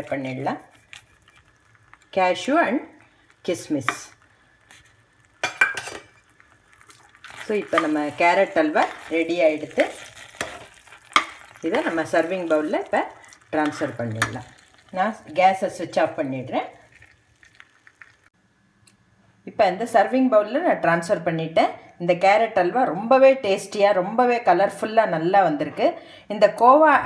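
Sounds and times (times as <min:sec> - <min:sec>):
thick food popping in a pan: 0:00.0 - 0:18.3.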